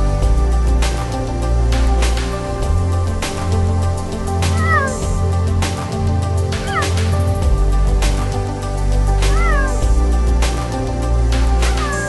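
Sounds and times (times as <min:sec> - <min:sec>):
background music with steady beat: 0:00.0 - 0:12.0
cheetah chirping calls: 0:04.5 - 0:05.1, 0:06.6 - 0:07.1, 0:09.3 - 0:09.8, 0:11.7 - 0:12.0.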